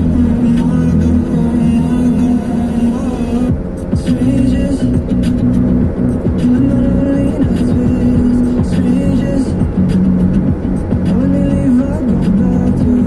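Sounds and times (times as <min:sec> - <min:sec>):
music on car radio: 0:00.0 - 0:13.0
road noise: 0:00.0 - 0:13.0.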